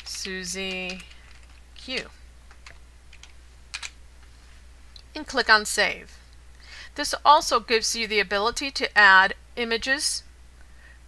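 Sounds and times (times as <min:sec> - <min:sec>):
keyboard keys typing: 0:00.0 - 0:04.0.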